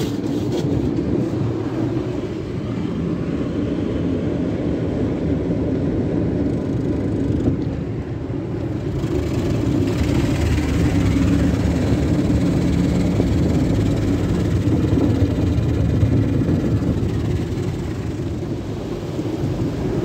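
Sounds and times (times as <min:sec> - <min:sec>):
car wash machinery rumble: 0:00.0 - 0:20.0
water spraying over car: 0:08.6 - 0:20.0.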